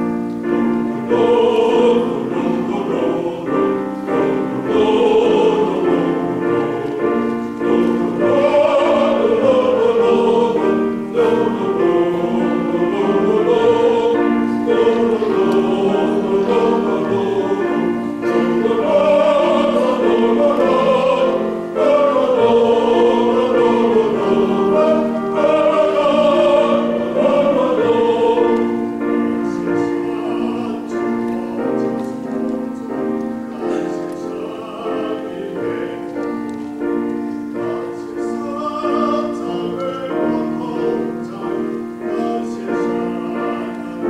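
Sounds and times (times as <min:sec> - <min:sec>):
grand piano: 0:00.0 - 0:44.0
men's choir singing a hymn: 0:00.0 - 0:44.0.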